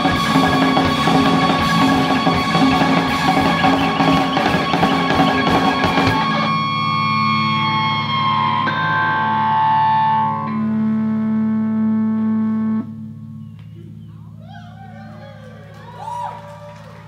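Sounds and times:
distorted electric guitars: 0.0s - 14.0s
rock drums: 0.0s - 14.0s
bass guitar chord: 0.0s - 15.6s.

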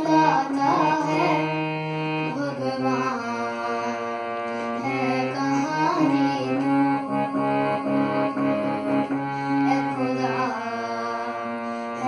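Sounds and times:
boy singing: 0.0s - 12.0s
harmonium sustained chord: 0.0s - 12.0s.

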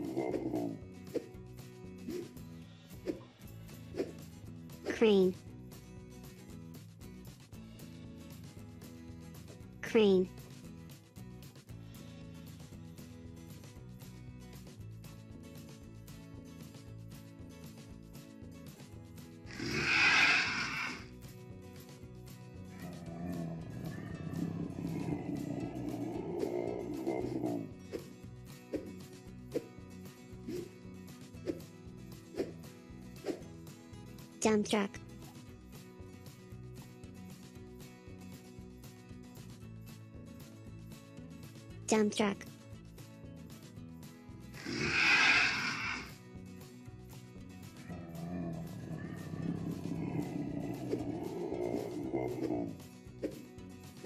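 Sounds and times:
background music: 0.0s - 54.0s.

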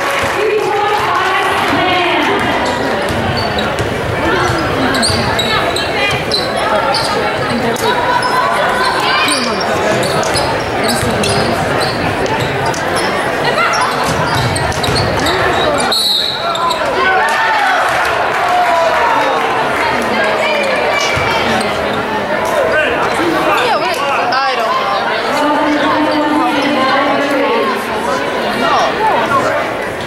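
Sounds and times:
people calling out: 0.0s - 17.8s
sneakers squeaking: 1.6s - 17.1s
whistle blast: 15.9s - 16.5s.

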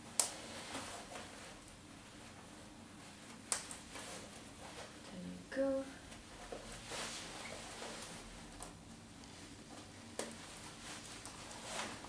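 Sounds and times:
coat fabric rustling: 6.1s - 8.3s, 10.4s - 12.0s.

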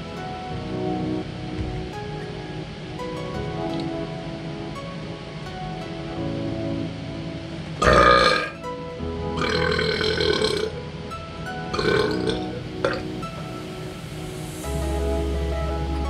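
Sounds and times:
background music: 0.0s - 16.0s
man burping: 7.8s - 8.6s, 9.4s - 10.8s, 11.7s - 13.0s.

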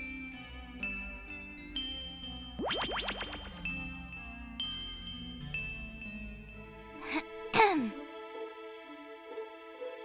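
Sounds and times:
background music chords: 0.0s - 10.0s.

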